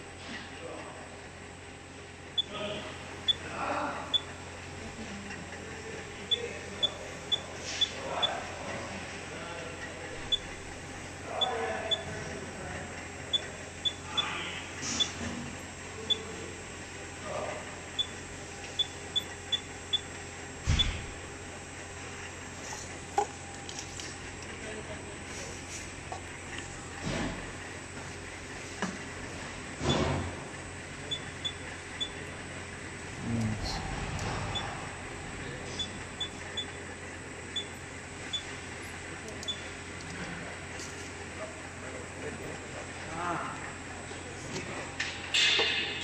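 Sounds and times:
steady machine hum: 0.0s - 46.0s
touchscreen key-press beeps: 6.3s - 7.9s, 31.1s - 32.2s, 35.8s - 36.8s, 39.4s - 39.6s
high electronic beeps: 35.8s - 36.8s.

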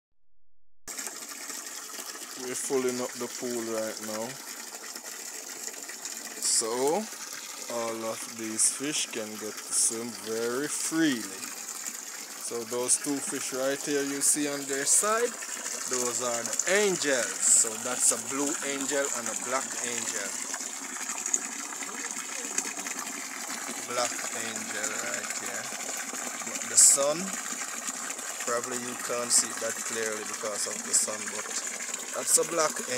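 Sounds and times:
water running into pond: 0.9s - 32.9s.

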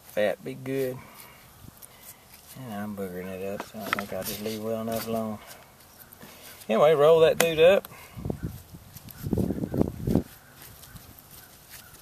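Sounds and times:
man talking: 0.1s - 1.1s, 2.5s - 5.5s, 6.6s - 7.9s.

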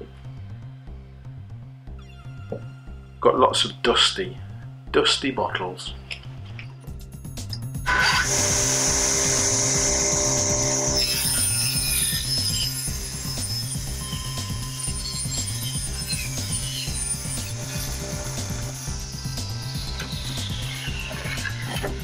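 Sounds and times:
background music: 0.0s - 22.0s
table saw cutting wood: 7.9s - 22.0s.

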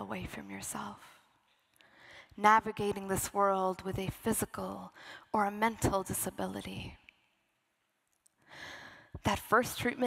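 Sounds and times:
woman breathing in: 1.8s - 2.4s, 8.4s - 9.2s.

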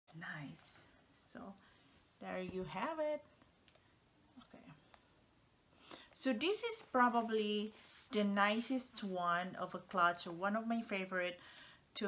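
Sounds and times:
woman speaking softly: 0.1s - 1.6s, 4.4s - 4.8s.

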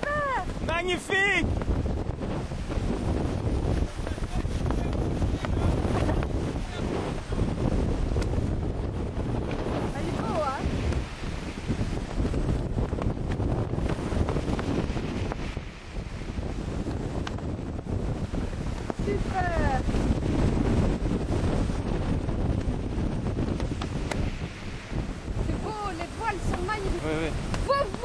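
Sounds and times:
sea water rushing and splashing: 0.0s - 28.0s
wind buffeting microphone: 0.0s - 28.0s.

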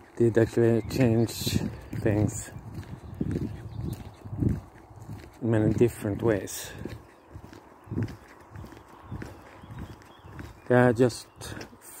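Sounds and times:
footsteps outdoors: 0.0s - 12.0s.

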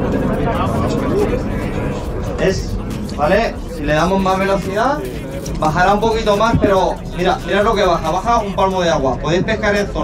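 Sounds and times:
faint crowd voices: 0.0s - 10.0s
steady low rumble: 0.0s - 10.0s.

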